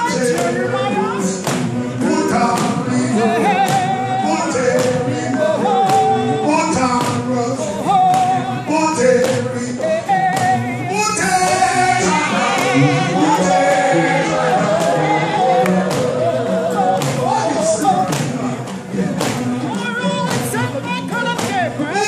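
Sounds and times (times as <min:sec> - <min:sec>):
group gospel singing: 0:00.0 - 0:22.0
steady percussive beat: 0:00.0 - 0:22.0.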